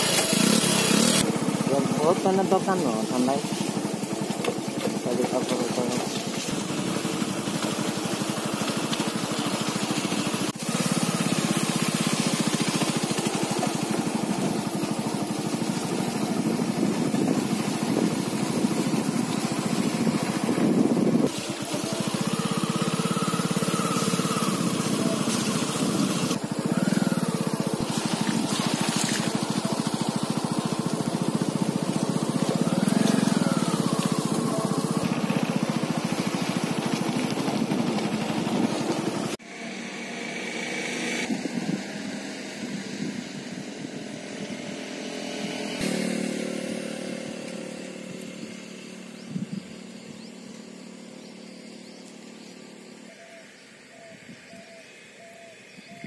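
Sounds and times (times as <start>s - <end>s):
small motorcycle engine running: 0.0s - 55.1s.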